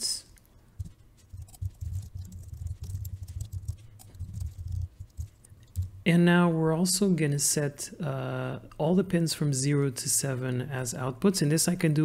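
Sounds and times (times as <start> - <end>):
typing on computer keyboard: 0.8 - 6.0.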